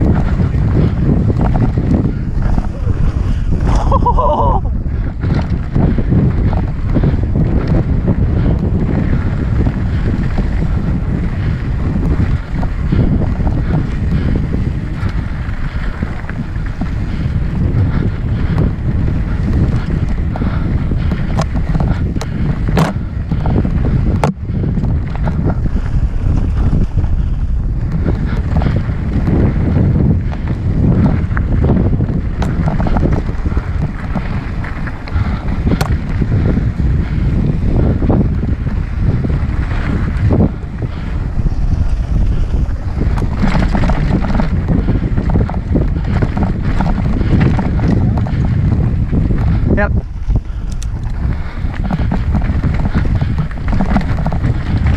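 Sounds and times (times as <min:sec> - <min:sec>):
bike knocking and rattling: 0:00.0 - 0:54.9
tyres rolling on dirt trail: 0:00.0 - 0:54.9
wind buffeting microphone: 0:00.0 - 0:54.9.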